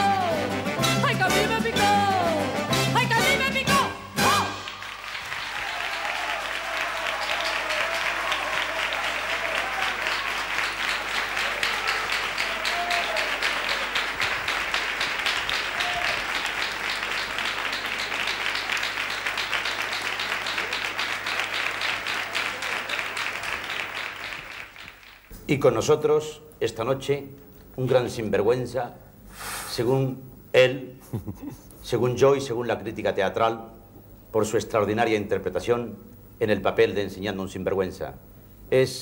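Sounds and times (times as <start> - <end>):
audience applauding: 4.4 - 25.3.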